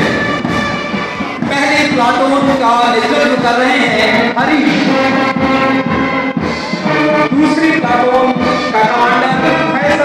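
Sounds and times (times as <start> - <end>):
brass band playing march: 0.0 - 10.0.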